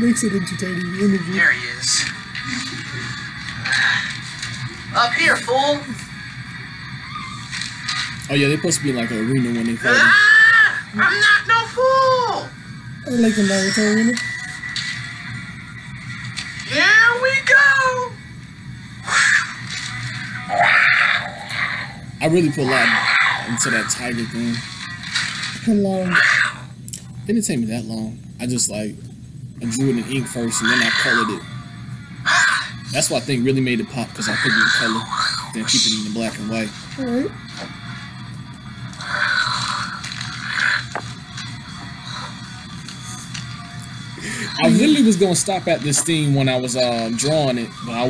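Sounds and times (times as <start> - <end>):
background music: 0.0 - 26.8, 29.6 - 48.0
tiger roaring: 20.5 - 22.0.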